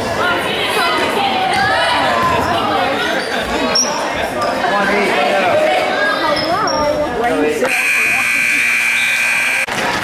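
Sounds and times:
crowd voices: 0.0 - 10.0
scoreboard horn buzz: 7.6 - 9.8.

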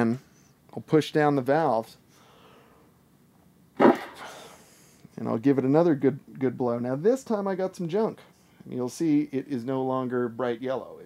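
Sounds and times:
air blast through trumpet: 3.8 - 4.5.

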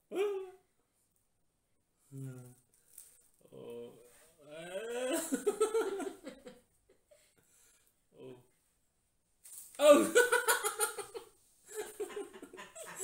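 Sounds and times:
man laughing: 9.8 - 13.0.

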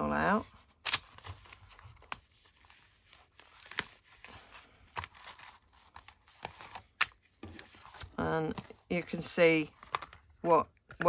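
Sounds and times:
paper rustling: 0.5 - 10.2.

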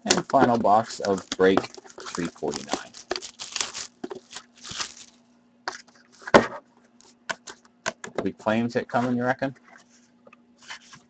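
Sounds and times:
plastic wrap tearing and crinkling: 0.1 - 5.2.

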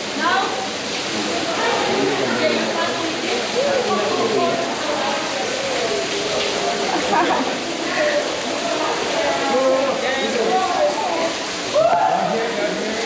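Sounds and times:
people talking and calling: 0.0 - 13.0
stream water rushing: 0.0 - 13.0.

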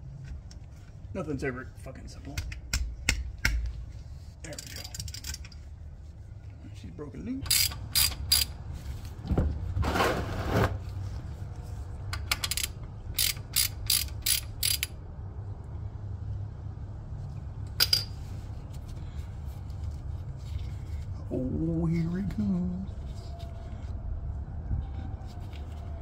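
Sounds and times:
ratchet clicking: 7.4 - 8.6, 12.1 - 15.0.

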